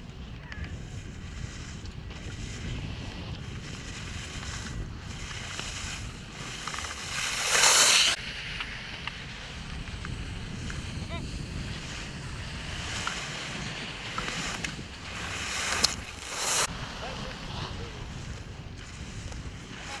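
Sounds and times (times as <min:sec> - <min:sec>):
skis carving and scraping snow: 0:00.0 - 0:20.0
wind buffeting microphone: 0:00.0 - 0:20.0.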